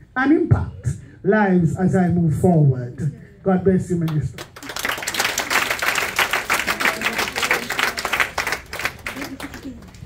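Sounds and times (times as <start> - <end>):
crowd applauding: 4.4 - 10.0.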